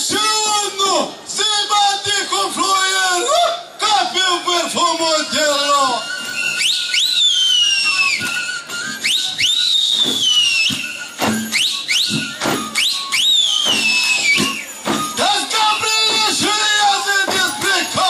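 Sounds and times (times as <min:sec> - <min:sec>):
shrill sliding whistles: 0:05.1 - 0:18.0
frame drums beaten: 0:10.0 - 0:18.0.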